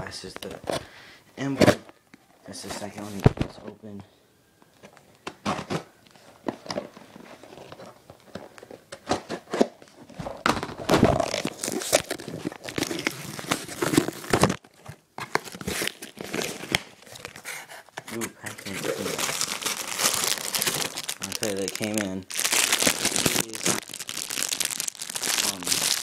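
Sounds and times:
packaging crinkling: 0:10.6 - 0:26.0
envelope tearing: 0:11.0 - 0:14.6, 0:18.6 - 0:26.0.

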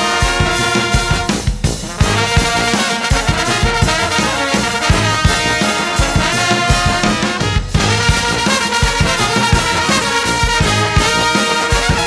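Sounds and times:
drum kit beat: 0:00.0 - 0:12.0
trombones: 0:00.0 - 0:12.0.

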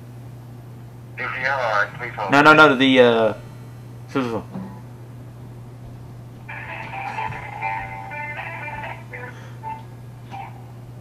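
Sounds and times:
steady low hum: 0:00.0 - 0:11.0
hold music through phone: 0:06.5 - 0:09.8.

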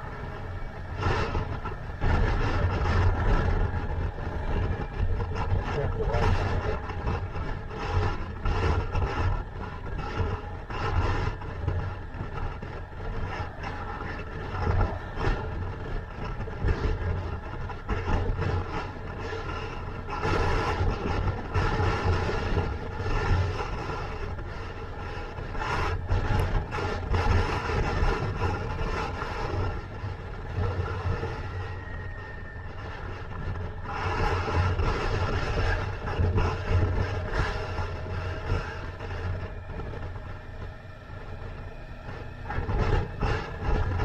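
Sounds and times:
motorcycle engine running: 0:00.0 - 0:44.0
wind and road noise: 0:00.0 - 0:44.0.

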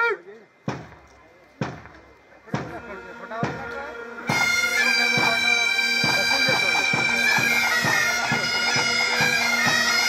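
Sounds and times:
heavy drum beats: 0:00.6 - 0:10.0.

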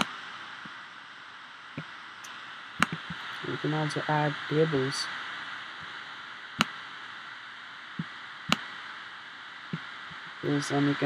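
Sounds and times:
laptop cooling fan hissing: 0:00.0 - 0:11.0
sharp clicks: 0:08.0 - 0:08.7.

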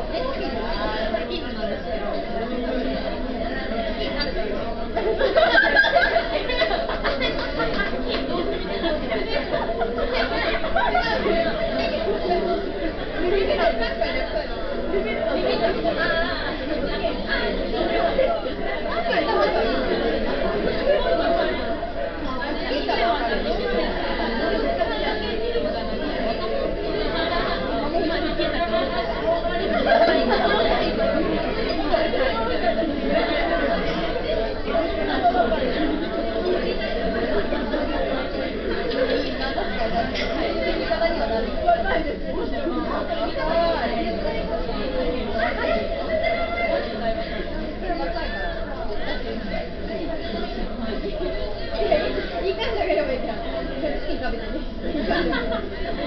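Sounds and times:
overlapping voices chattering: 0:00.0 - 0:56.0.

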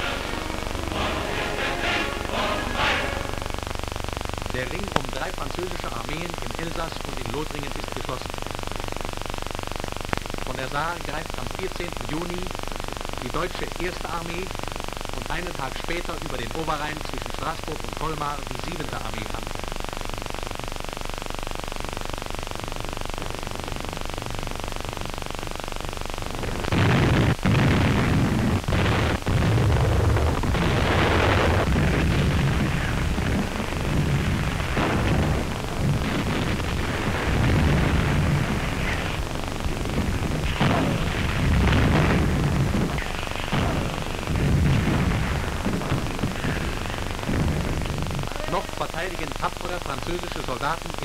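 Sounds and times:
film soundtrack hiss: 0:00.0 - 0:51.0
explosions: 0:26.7 - 0:49.1.

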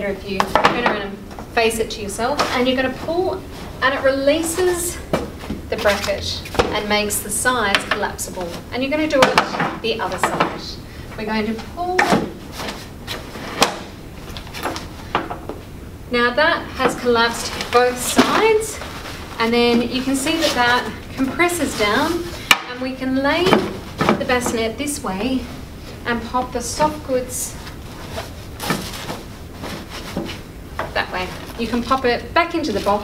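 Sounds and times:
fabric rustling and rubbing: 0:02.1 - 0:06.9, 0:11.4 - 0:15.0, 0:16.8 - 0:22.4, 0:23.0 - 0:33.0
fabric scuff: 0:27.6 - 0:30.5.

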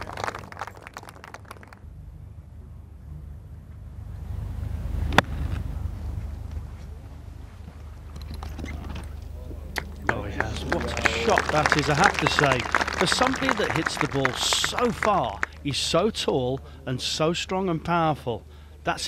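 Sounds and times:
low hum: 0:01.8 - 0:16.5.

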